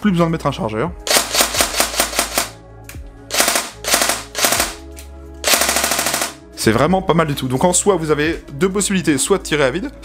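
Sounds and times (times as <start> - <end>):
airsoft gun dry-firing full auto: 1.1 - 2.6, 3.3 - 4.8, 5.4 - 6.4.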